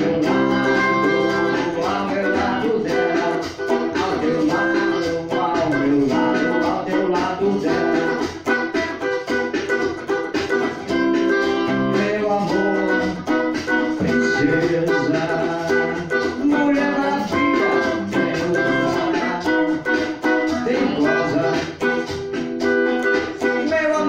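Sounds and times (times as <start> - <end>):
man singing: 0.0 - 8.4, 11.7 - 22.1, 23.4 - 24.0
guitar accompaniment: 0.0 - 24.0.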